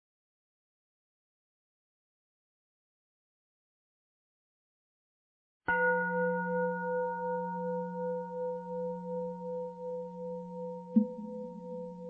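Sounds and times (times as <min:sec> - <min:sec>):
bell-like metallic tone ringing: 0:05.7 - 0:12.0.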